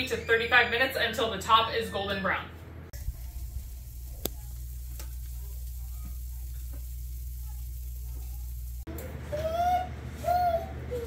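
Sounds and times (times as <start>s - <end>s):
oven humming: 2.0s - 11.0s
faint hiss: 3.0s - 8.9s
sharp tick: 4.2s - 5.8s.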